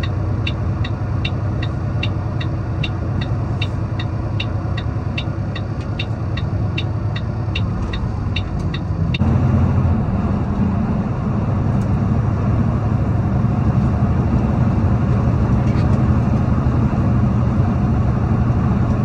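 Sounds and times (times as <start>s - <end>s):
turn signal ticking: 0.0s - 9.3s
road rumble: 0.0s - 19.0s
truck diesel engine running: 0.0s - 19.0s.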